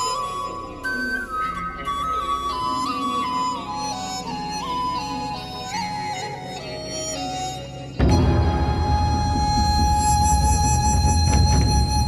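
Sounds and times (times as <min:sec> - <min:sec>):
instrumental melody over accompaniment: 0:00.0 - 0:12.0.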